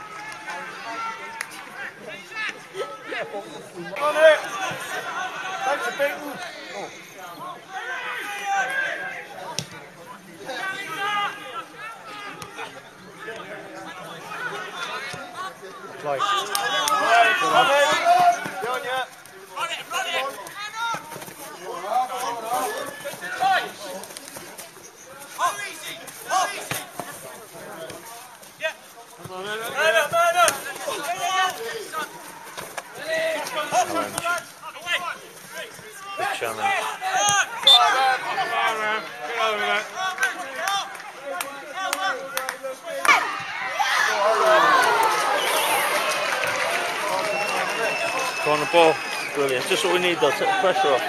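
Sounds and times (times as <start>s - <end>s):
people shouting and calling: 0.0s - 9.5s, 10.4s - 24.4s, 29.4s - 51.0s.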